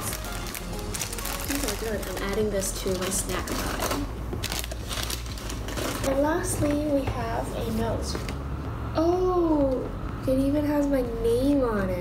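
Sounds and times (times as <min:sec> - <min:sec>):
paper bag rustling and crinkling: 0:00.0 - 0:06.8.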